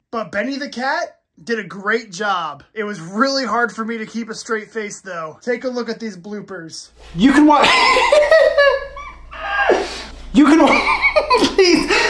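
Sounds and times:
man laughing high-pitched: 0:07.6 - 0:12.0.

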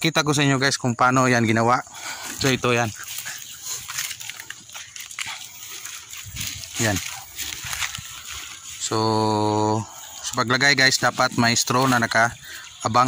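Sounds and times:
cabbage leaves rustling: 0:01.3 - 0:13.0
plastic sheet crackling: 0:02.4 - 0:09.4.

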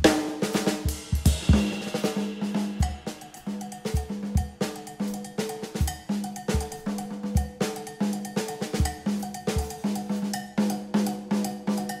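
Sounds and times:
drum strokes on toms and cymbals: 0:00.0 - 0:12.0.

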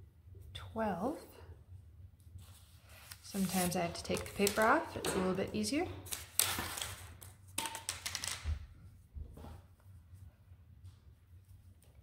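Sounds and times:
paper label rustling: 0:02.4 - 0:05.0.

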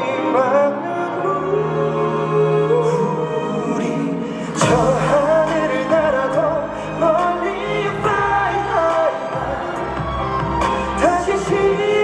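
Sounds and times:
pop song over stadium speakers: 0:00.0 - 0:12.0.

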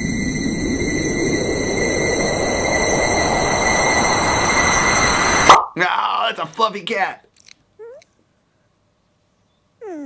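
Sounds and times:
rising noise swell: 0:00.0 - 0:06.3.

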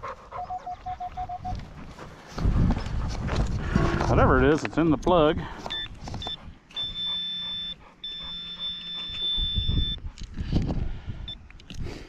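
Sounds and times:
dog panting: 0:00.0 - 0:03.6, 0:06.1 - 0:10.5
metal detector beeping: 0:00.4 - 0:01.6, 0:05.6 - 0:10.0.

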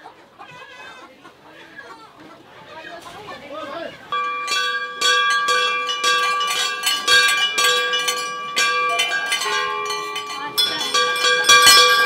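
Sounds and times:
brass bells ringing: 0:04.1 - 0:12.0.

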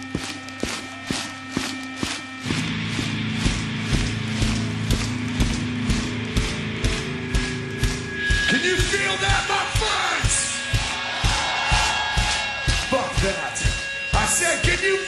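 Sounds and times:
crowd clapping in unison: 0:00.0 - 0:14.8
low droning musical tone: 0:00.0 - 0:15.0.

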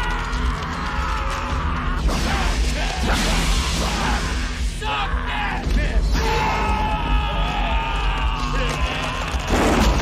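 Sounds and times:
dramatic score music: 0:00.0 - 0:10.0.

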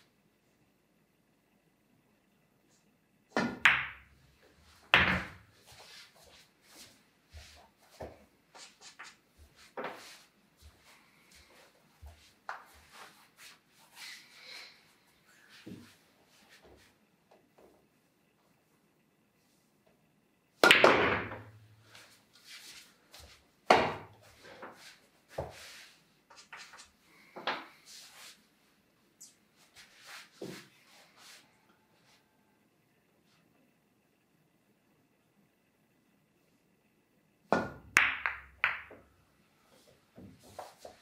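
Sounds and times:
pool cue striking ball: 0:37.5 - 0:39.1
billiard balls clicking: 0:37.6 - 0:39.1.

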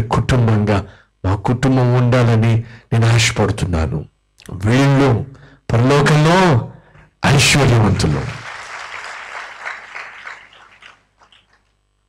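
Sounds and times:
congregation applauding: 0:07.8 - 0:11.7.

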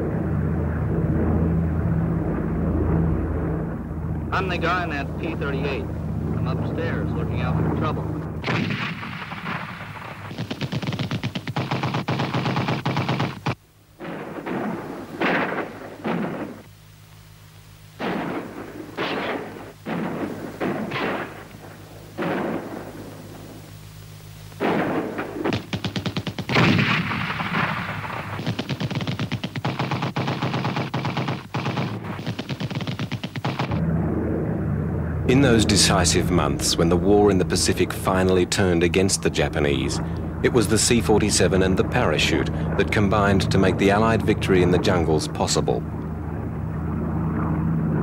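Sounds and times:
low steady hum: 0:00.0 - 0:48.0
machine-gun fire: 0:08.4 - 0:16.7, 0:18.0 - 0:23.2, 0:24.6 - 0:33.8.

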